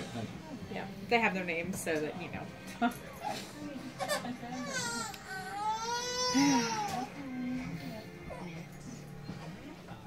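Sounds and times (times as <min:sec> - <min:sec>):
baby crying: 0:04.0 - 0:07.2.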